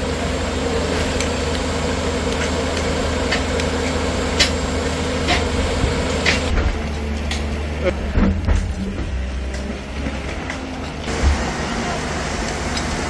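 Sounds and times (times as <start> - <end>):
diesel engine running: 0.0 - 13.0.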